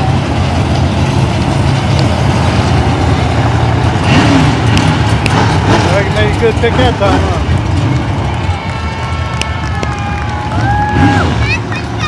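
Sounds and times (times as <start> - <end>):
race cars rumbling: 0.0 - 12.0
spectators' voices: 0.0 - 12.0.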